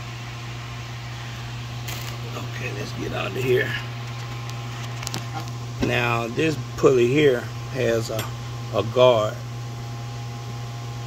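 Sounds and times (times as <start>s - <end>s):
low motor hum: 0.0s - 11.0s
man speaking: 2.2s - 4.0s, 5.8s - 9.5s.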